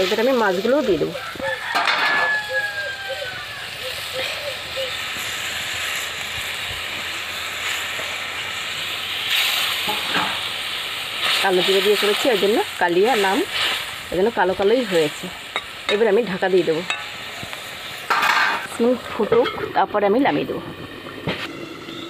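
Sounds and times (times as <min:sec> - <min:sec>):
fish sizzling into hot gravy: 0:00.0 - 0:22.0
gravy bubbling and sizzling: 0:00.0 - 0:22.0.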